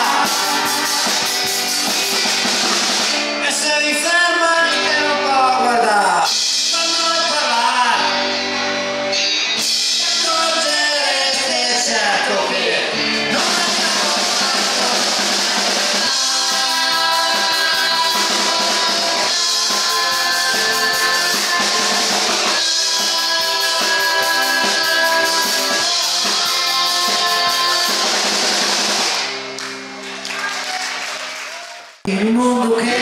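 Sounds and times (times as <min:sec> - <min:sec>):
drum kit with cymbals: 0:00.0 - 0:03.4, 0:06.2 - 0:07.6, 0:13.3 - 0:29.3
rock band playing: 0:00.0 - 0:31.1
audience applause: 0:29.6 - 0:32.0.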